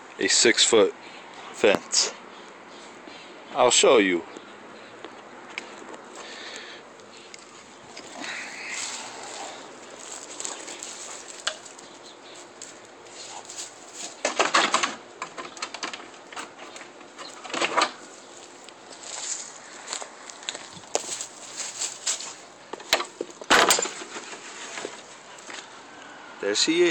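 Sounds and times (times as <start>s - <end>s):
dog claws scrabbling on wooden fence: 10.0s - 18.2s.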